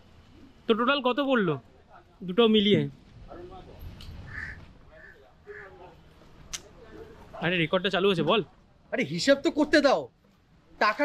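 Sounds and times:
distant voices: 0.0 - 8.9.

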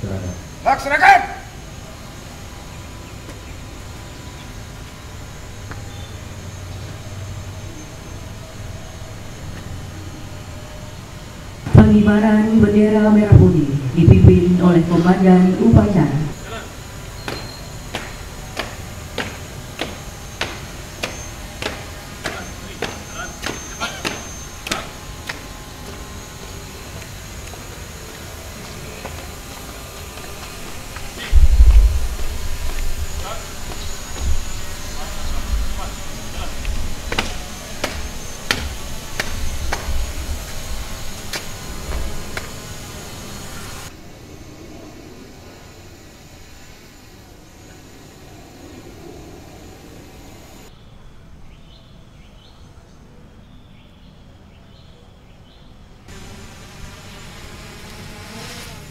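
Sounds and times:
marching footsteps on paving: 17.2 - 42.6
wind rumbling on microphone: 29.3 - 42.9.

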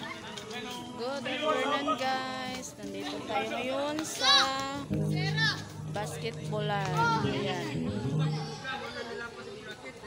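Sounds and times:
background music: 0.0 - 9.4
person speaking: 4.8 - 8.6.

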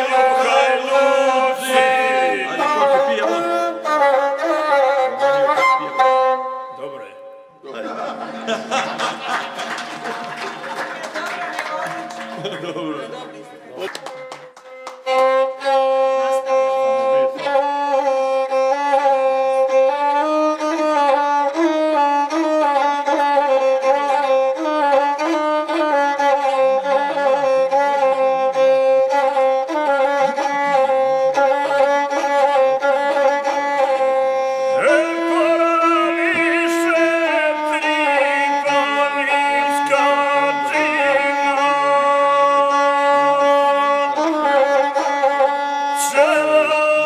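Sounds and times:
man singing: 0.0 - 3.9, 34.7 - 44.6, 45.9 - 47.0
bowed fiddle melody: 0.0 - 10.4, 11.7 - 47.0.

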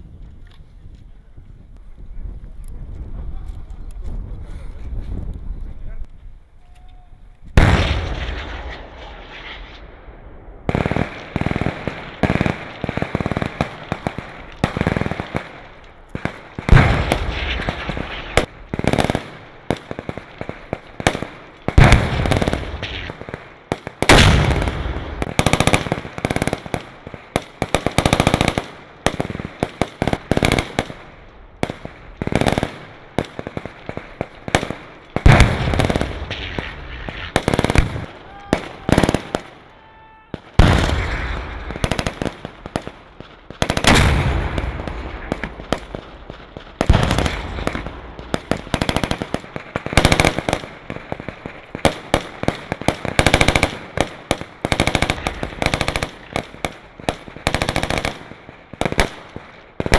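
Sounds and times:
rifle shots: 7.6 - 39.7, 40.3 - 59.9
automatic gunfire bursts: 27.4 - 30.9, 48.4 - 50.6, 51.8 - 58.2.

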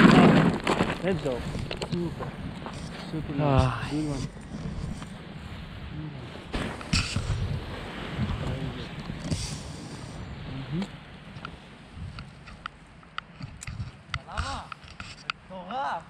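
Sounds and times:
camera handling rustling: 12.2 - 15.4.

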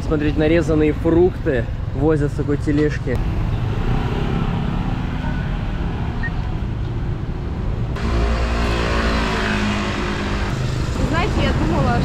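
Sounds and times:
cars and motorbikes driving past: 0.8 - 12.0
steady engine hum: 5.8 - 12.0
motorbike passing close: 8.0 - 12.0.

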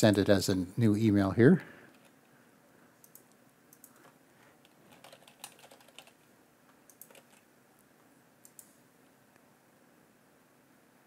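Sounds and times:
faint keyboard typing: 1.5 - 2.4, 3.0 - 9.4.

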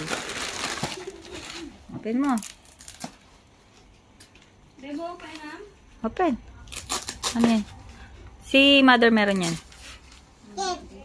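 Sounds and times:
plastic packaging crinkling: 0.0 - 3.3.

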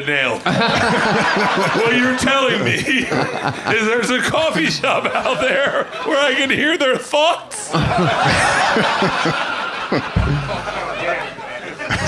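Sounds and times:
crowd laughing: 0.4 - 6.7, 7.6 - 12.0
man laughing close to microphone: 0.5 - 3.8, 7.7 - 12.0.

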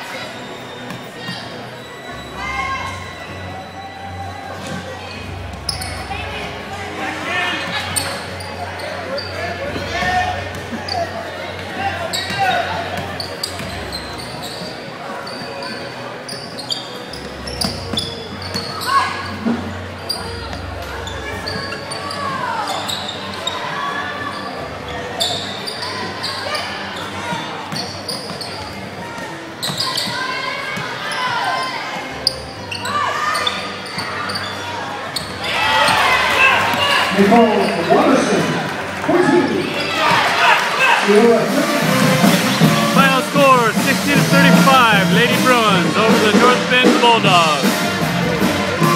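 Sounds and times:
voices of players and spectators: 0.0 - 48.9.

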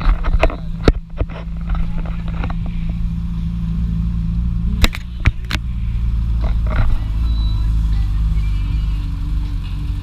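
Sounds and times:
car engine droning: 0.0 - 10.0
road and wind noise: 0.0 - 10.0.

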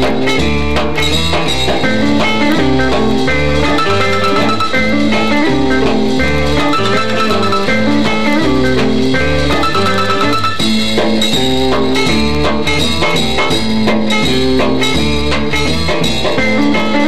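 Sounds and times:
guitar: 0.0 - 17.0
steady bass line: 0.0 - 17.0.

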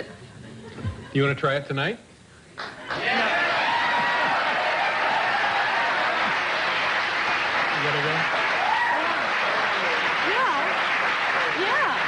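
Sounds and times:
audience clapping: 2.6 - 12.0
people shouting: 3.0 - 6.3.

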